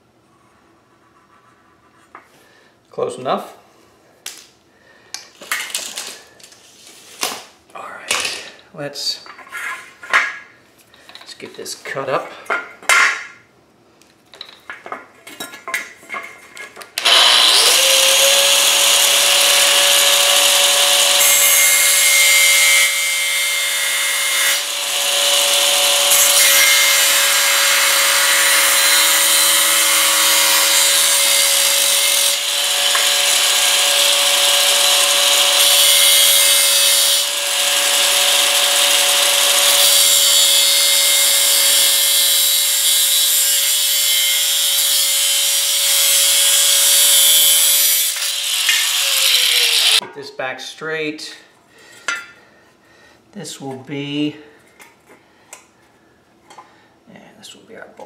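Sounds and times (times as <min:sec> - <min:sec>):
angle grinder motor whine: 0:17.0 - 0:21.5, 0:48.5 - 0:50.0
grinding wheel cutting metal: 0:17.0 - 0:50.0.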